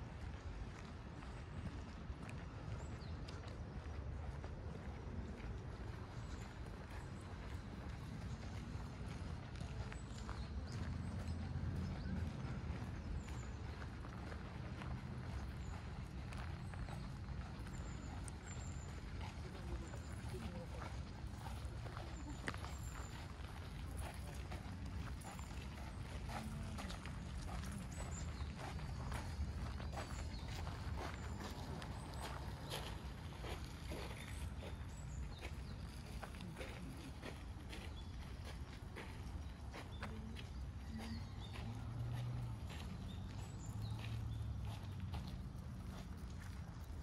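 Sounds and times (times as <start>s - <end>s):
voices of passers-by: 0.1s - 47.0s
footsteps on gravel: 9.5s - 47.0s.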